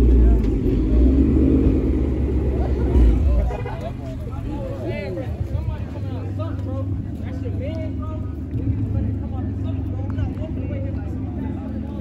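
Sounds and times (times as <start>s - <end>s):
car engine idling: 0.0s - 12.0s
people talking indistinctly: 0.0s - 12.0s.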